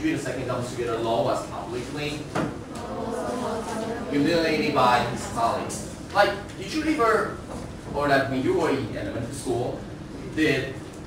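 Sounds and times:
students reading aloud together: 2.6s - 7.2s.

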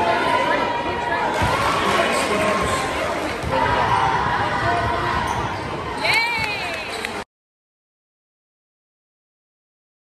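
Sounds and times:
crowd chattering: 0.0s - 7.2s.

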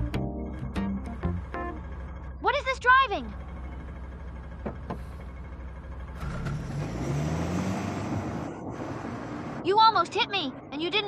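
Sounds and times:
car engine running: 0.0s - 10.5s.

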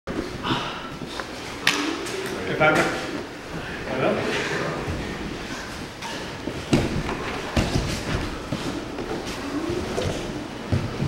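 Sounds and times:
rustling movement on mats: 0.1s - 11.0s.

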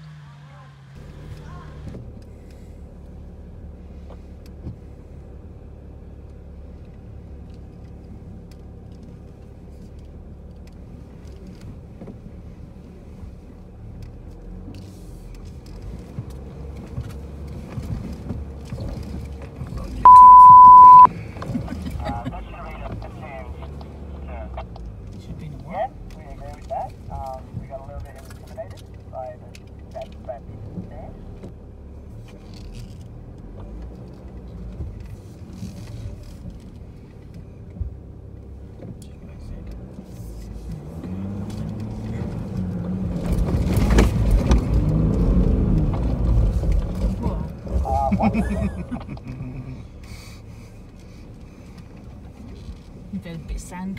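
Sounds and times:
car engine revving: 10.6s - 36.8s, 39.5s - 51.7s
loud steady beep: 20.1s - 21.1s.

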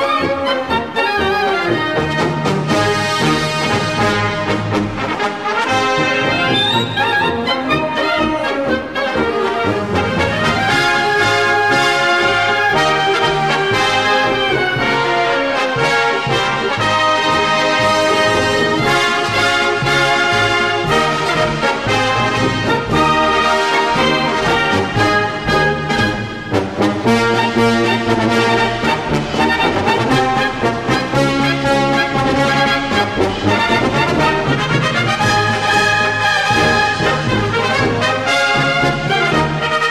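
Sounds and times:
military brass band playing: 0.0s - 39.9s.

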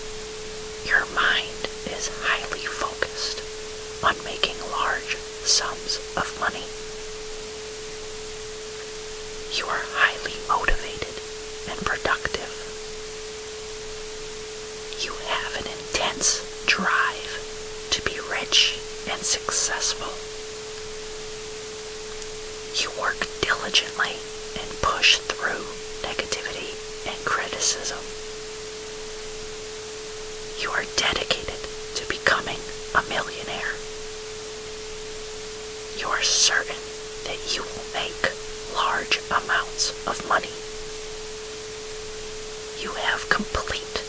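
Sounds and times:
steady hiss: 0.0s - 44.0s
person whispering: 0.8s - 6.8s, 9.5s - 12.8s, 14.9s - 20.2s, 22.7s - 28.1s, 30.6s - 33.9s, 36.0s - 40.7s, 42.8s - 44.0s.

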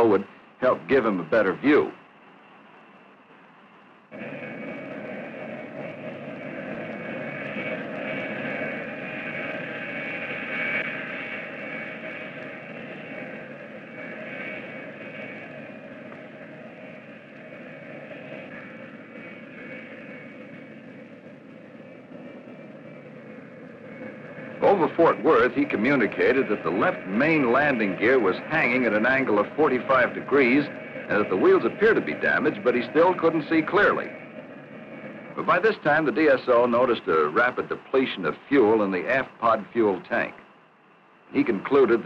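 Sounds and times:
jet engines droning in flight: 0.0s - 42.0s.

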